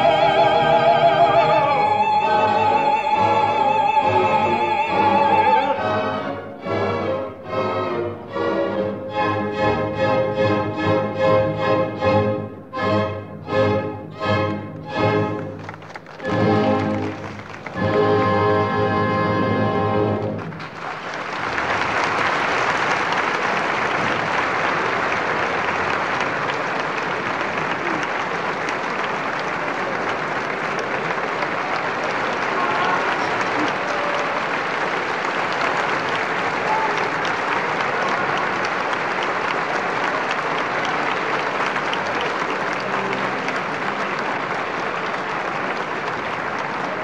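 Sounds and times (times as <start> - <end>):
audience applauding: 0.0 - 7.4, 14.3 - 18.8, 20.0 - 47.0.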